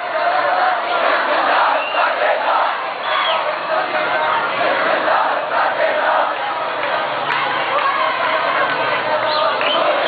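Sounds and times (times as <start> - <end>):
crowd of protesters shouting: 0.0 - 10.0.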